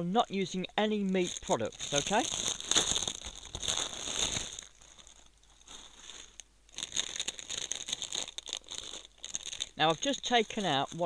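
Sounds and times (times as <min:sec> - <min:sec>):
plastic packaging crinkling: 0:01.0 - 0:11.0.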